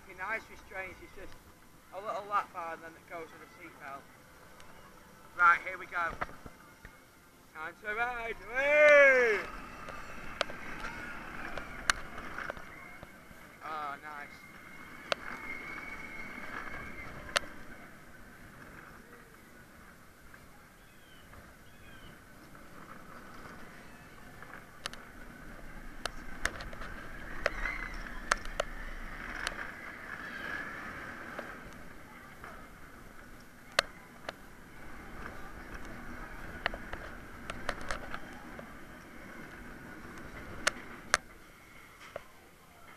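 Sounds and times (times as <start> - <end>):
roller coaster rumbling on track: 0.0 - 42.9
riders calling out: 7.7 - 41.1.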